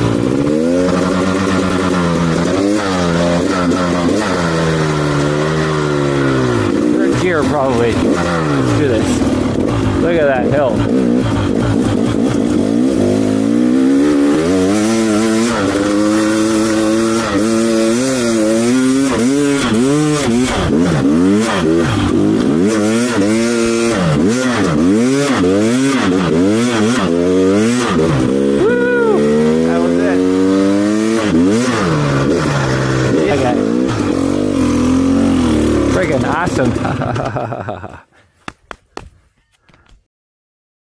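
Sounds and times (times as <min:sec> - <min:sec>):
dirt bike engine revving: 0:00.0 - 0:38.0.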